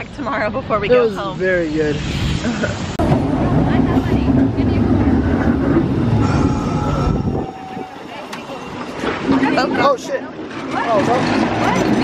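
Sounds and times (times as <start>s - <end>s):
streetcar rumbling on rails: 0.0s - 12.0s
faint high squeal: 6.1s - 9.0s.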